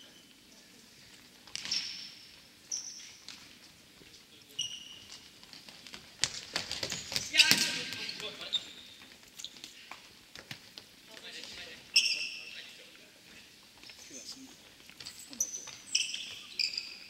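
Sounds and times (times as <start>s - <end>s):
shoes squeaking on floor: 1.1s - 12.8s, 13.4s - 17.0s.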